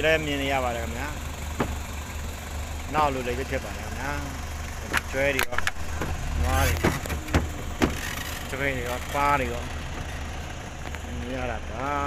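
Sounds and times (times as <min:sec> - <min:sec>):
car engine running low hum: 0:00.0 - 0:12.0.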